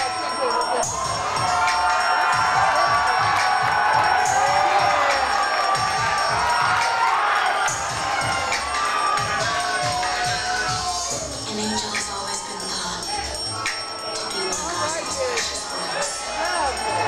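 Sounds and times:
audience cheering and shouting: 0.0s - 17.0s
music with steady beat: 0.0s - 17.0s.

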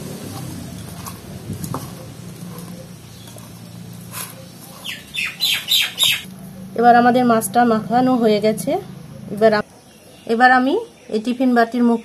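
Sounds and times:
steady low hum: 0.0s - 9.8s
bird calling: 2.5s - 6.7s.

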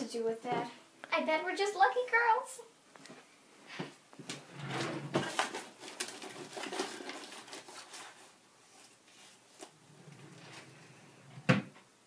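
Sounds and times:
rummaging in wooden cabinet: 4.4s - 7.5s
wooden cabinet banging shut: 11.4s - 11.8s.

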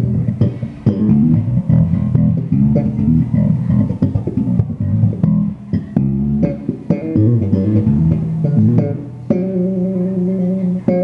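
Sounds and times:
electric bass plucked notes: 0.0s - 11.0s.

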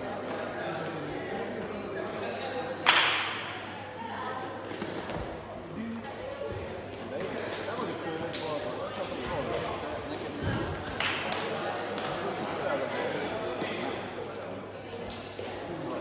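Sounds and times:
voices chattering in a hall: 0.0s - 16.0s.

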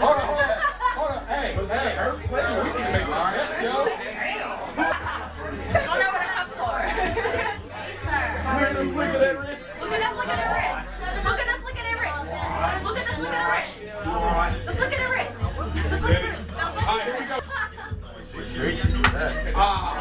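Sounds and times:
crowd chatter in a room: 0.0s - 20.0s.

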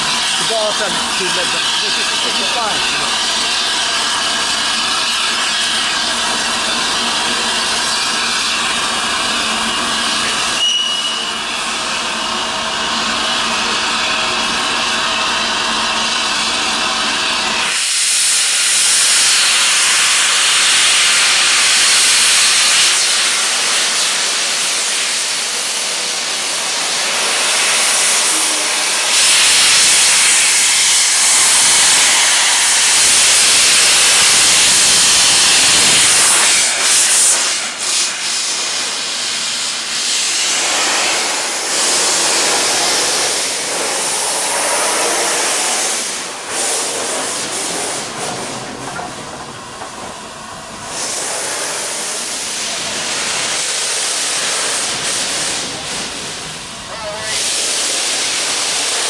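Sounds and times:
steam hissing from locomotive: 0.0s - 59.0s.

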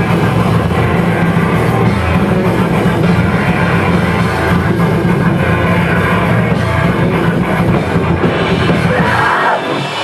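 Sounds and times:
punk band playing live: 0.0s - 10.0s.

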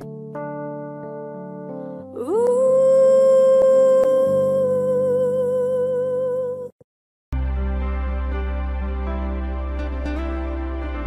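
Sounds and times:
soft keyboard chords: 0.0s - 6.8s
woman singing long high note: 2.2s - 6.7s.

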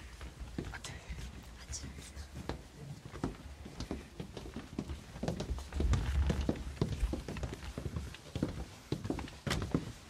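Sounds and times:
steady low rumble: 5.6s - 7.2s.

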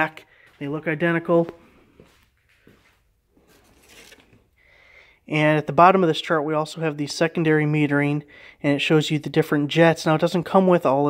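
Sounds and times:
faint rustling and handling: 0.5s - 4.6s.

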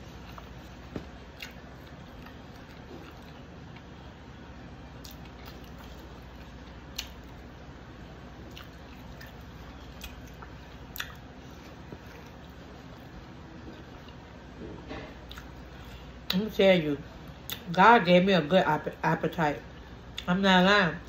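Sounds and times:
chewing and wet mouth sounds: 0.0s - 16.4s, 17.2s - 17.8s.

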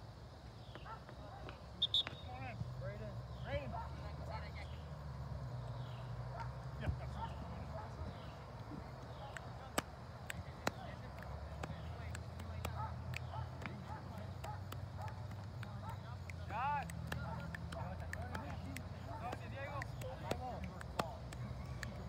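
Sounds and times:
distant players shouting: 0.8s - 22.0s.

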